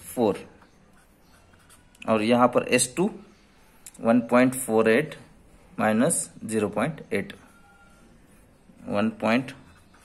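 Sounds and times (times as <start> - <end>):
felt-tip pen writing on paper: 0.8 - 2.0, 9.5 - 10.0.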